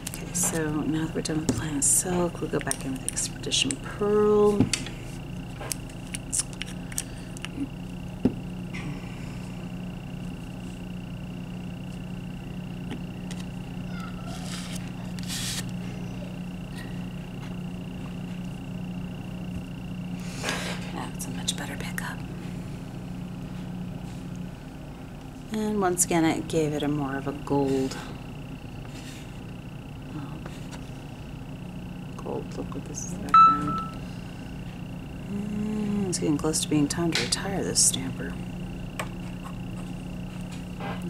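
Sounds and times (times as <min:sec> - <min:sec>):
steady low hum: 0:00.0 - 0:41.0
thin high tone: 0:33.3 - 0:34.1.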